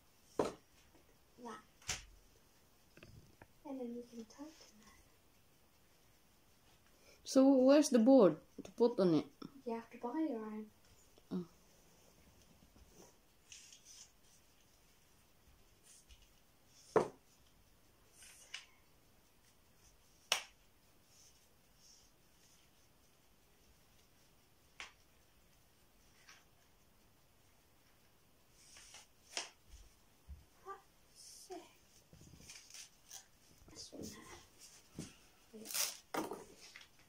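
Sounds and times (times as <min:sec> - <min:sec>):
wooden easel knocks and scrapes: 0:00.4 - 0:00.6, 0:16.8 - 0:17.2, 0:36.1 - 0:36.6.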